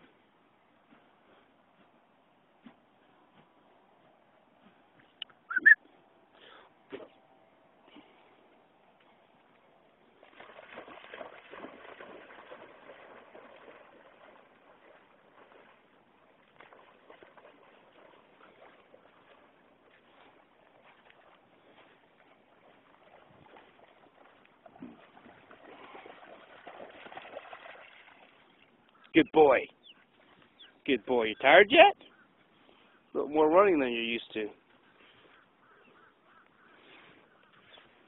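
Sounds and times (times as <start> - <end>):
dog splashing through shallow water: 9.8 - 29.1
water lapping: 9.9 - 29.2, 33.9 - 38.0.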